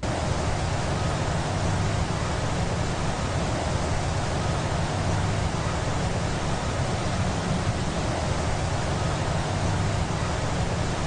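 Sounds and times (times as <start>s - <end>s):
steady rushing noise: 0.0s - 11.0s.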